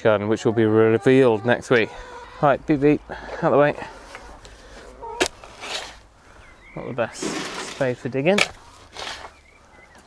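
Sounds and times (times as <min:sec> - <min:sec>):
spade hitting soil: 0:05.2 - 0:06.0, 0:07.1 - 0:09.4
spade scraping into soil: 0:05.2 - 0:06.1, 0:07.1 - 0:09.4.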